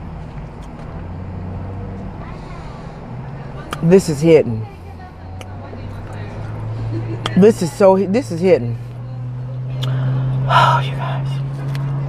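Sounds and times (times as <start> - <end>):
mouth click: 3.7 - 3.9, 9.8 - 10.0.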